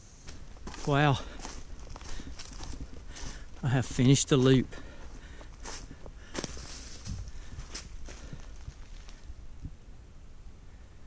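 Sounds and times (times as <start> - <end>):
footsteps on dry leaves: 0.0 - 9.4.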